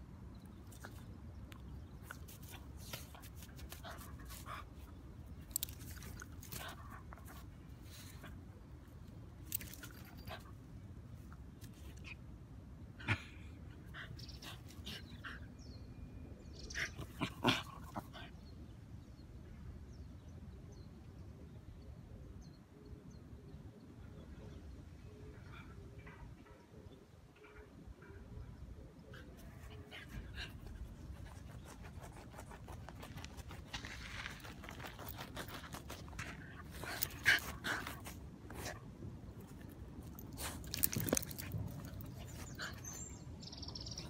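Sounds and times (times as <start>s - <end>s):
paws scratching sandy soil: 0.5s - 10.6s, 29.2s - 44.0s
dog panting and sniffing: 29.2s - 43.2s.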